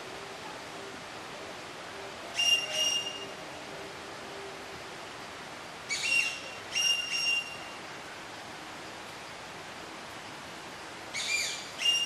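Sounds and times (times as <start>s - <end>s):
bird whistling: 2.4s - 3.3s, 5.9s - 7.6s, 11.2s - 12.0s.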